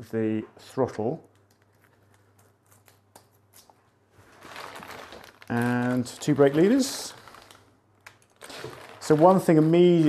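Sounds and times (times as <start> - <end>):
small parts clicking and rustling: 4.4 - 9.8.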